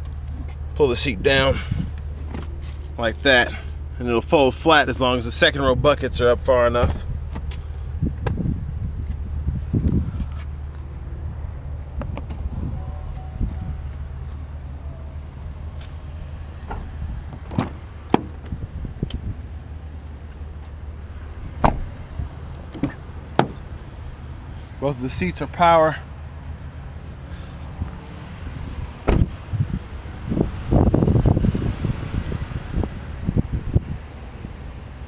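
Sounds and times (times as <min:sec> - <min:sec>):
steady low rumble: 0:00.0 - 0:34.9
car door unlatching and opening: 0:02.2 - 0:02.8, 0:16.6 - 0:19.3, 0:21.4 - 0:22.0, 0:22.7 - 0:23.7, 0:29.0 - 0:29.4.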